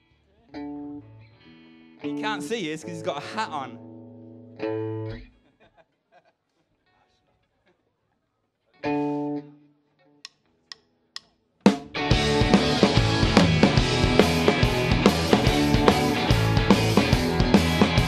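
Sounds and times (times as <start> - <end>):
guitar chord ringing: 0.6 - 5.2, 11.9 - 18.0
rock band playing: 2.0 - 4.0, 11.6 - 18.0
drumstick clicks: 10.3 - 11.4.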